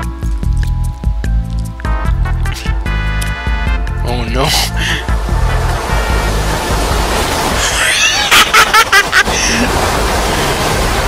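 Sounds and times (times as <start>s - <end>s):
music: 0.0s - 7.6s.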